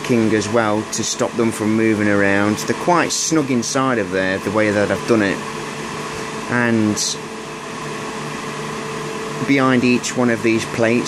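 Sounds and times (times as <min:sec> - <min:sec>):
machinery hum and whir: 0:00.0 - 0:11.0.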